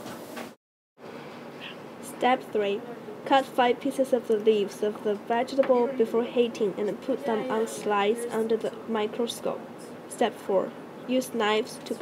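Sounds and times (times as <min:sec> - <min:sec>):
faint background hiss: 0:00.1 - 0:12.0
person narrating: 0:02.0 - 0:12.0.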